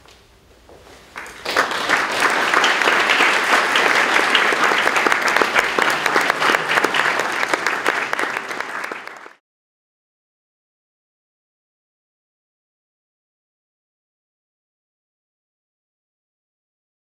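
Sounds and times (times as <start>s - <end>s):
audience applauding: 1.2s - 9.4s.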